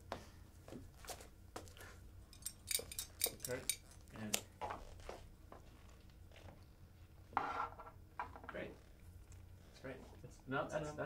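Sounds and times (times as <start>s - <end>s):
glass clinking: 2.3s - 4.0s.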